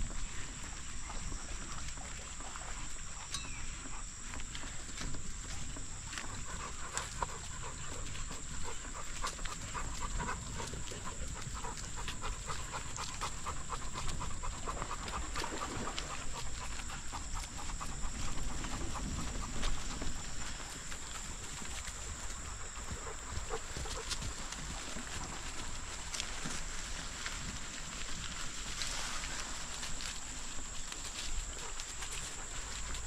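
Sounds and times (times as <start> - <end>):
dog panting: 5.4 - 33.0.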